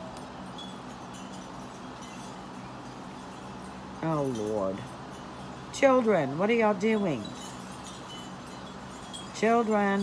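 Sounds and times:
high ringing tones: 0:00.0 - 0:10.0.

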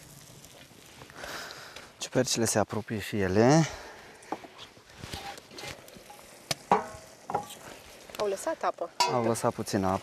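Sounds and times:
squeaky scrape: 0:04.6 - 0:05.8.

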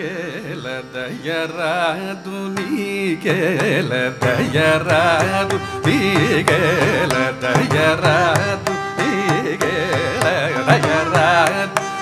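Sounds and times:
man singing with ornaments: 0:00.0 - 0:12.0
violin: 0:00.0 - 0:12.0
mridangam drum strokes: 0:03.7 - 0:12.0.

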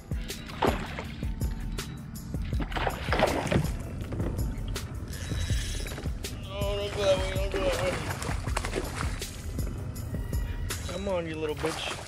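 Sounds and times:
steady low rumble: 0:00.0 - 0:11.2
background music: 0:00.0 - 0:12.0.

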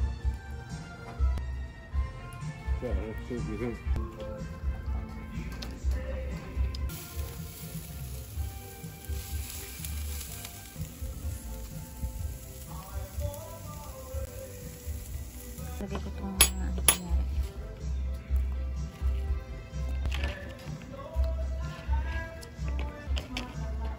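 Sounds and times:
background music with low beat: 0:00.0 - 0:23.9
steaks sizzling on a grill: 0:06.9 - 0:16.9.

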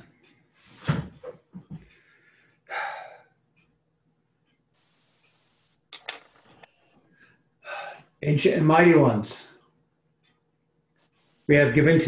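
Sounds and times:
man speaking: 0:08.2 - 0:09.6, 0:11.5 - 0:12.0.

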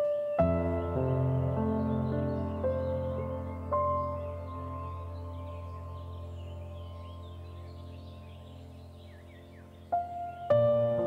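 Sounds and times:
faint bird chirps: 0:00.0 - 0:11.0
soft ambient music: 0:00.0 - 0:11.0.

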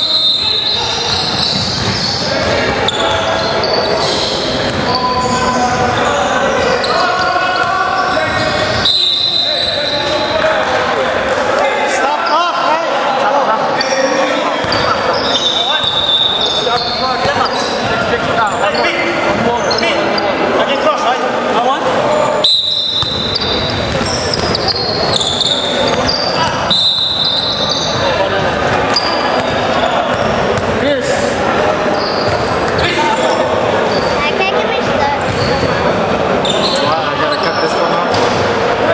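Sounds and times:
sneaker squeaks: 0:00.0 - 0:10.5, 0:13.8 - 0:20.4, 0:22.1 - 0:38.4
voices echoing in gym: 0:00.0 - 0:38.9
basketball bouncing: 0:00.9 - 0:03.2, 0:04.6 - 0:05.9, 0:22.9 - 0:26.7, 0:27.5 - 0:30.8, 0:35.2 - 0:35.9.

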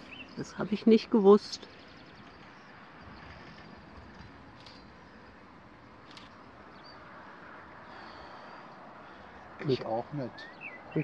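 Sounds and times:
outdoor background rush: 0:00.0 - 0:11.0.

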